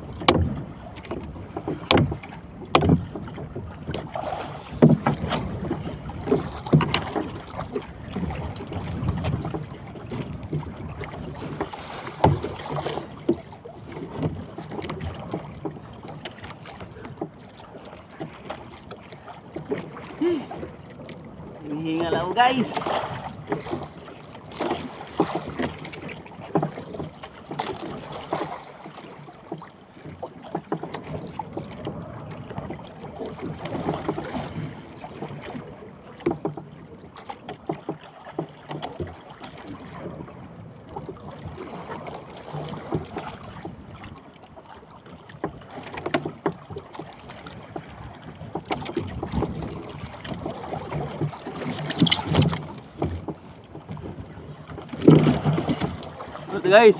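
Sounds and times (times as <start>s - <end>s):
water sloshing against boat hull: 0.0s - 56.9s.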